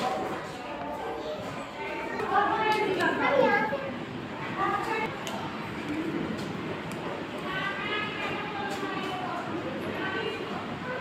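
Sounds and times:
child speaking: 3.1s - 4.0s.

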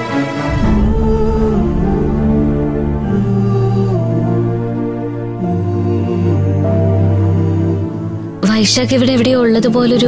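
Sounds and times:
deep sustained low drone: 0.5s - 6.8s.

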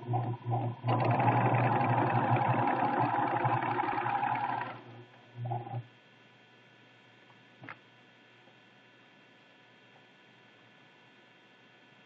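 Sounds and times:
sewing machine stitching: 0.0s - 5.8s.

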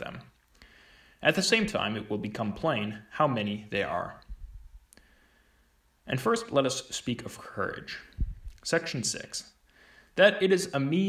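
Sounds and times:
man narrating: 0.0s - 0.3s, 1.2s - 4.2s, 6.1s - 9.6s, 10.2s - 11.0s.

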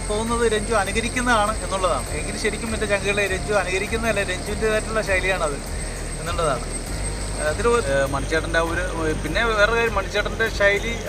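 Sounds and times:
man speaking: 0.0s - 6.7s, 7.4s - 11.0s
steady low rumble: 0.0s - 11.0s.

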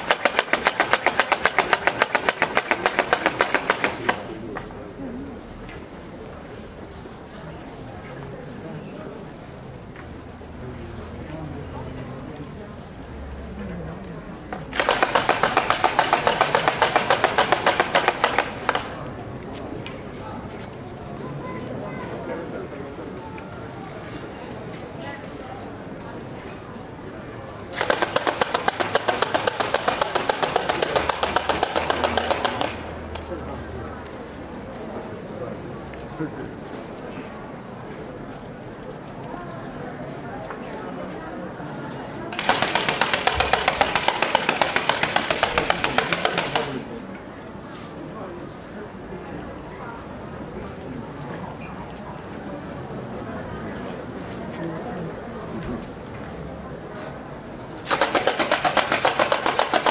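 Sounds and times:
crowd murmuring: 0.0s - 59.9s.

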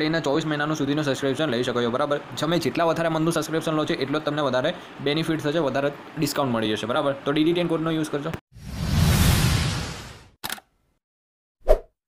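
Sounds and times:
whoosh: 8.6s - 10.4s.

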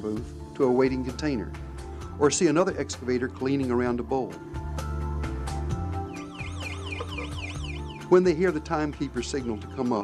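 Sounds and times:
background music: 0.0s - 10.0s
electronic warbling signal tone: 6.1s - 8.1s.

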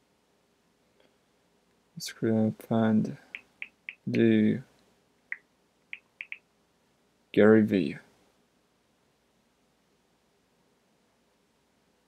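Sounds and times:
phone keyboard ticks: 3.4s - 4.1s, 6.0s - 6.4s.

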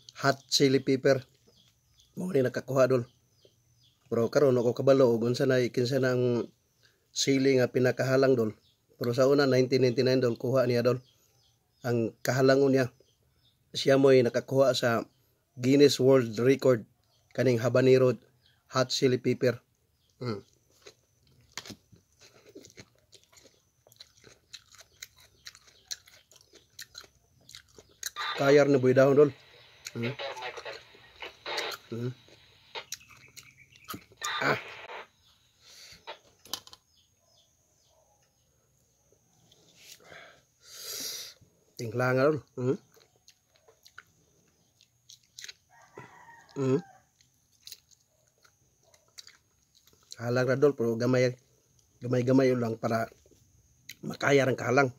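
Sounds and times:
person chewing food: 20.0s - 28.2s, 31.6s - 34.2s, 42.8s - 46.0s, 47.0s - 50.2s
mouth clicks: 29.4s - 36.8s.

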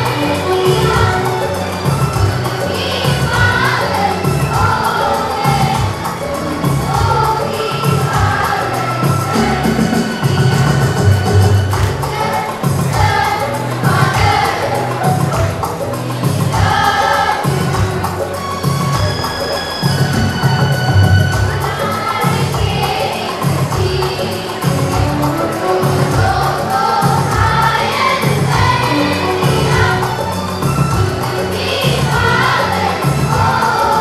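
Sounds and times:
children singing: 0.0s - 34.0s
regular beat: 0.0s - 34.0s.

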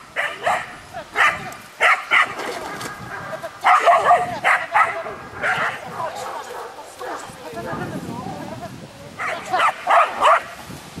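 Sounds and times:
young dog barking excitedly: 0.2s - 7.8s, 9.2s - 10.6s.

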